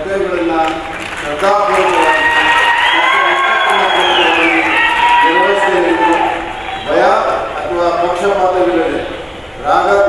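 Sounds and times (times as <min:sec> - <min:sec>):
crowd cheering and shouting: 0:01.4 - 0:07.2.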